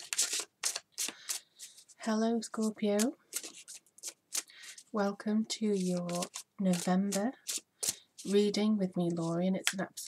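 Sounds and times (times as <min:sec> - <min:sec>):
cards being shuffled: 0:00.0 - 0:04.9, 0:05.7 - 0:08.5.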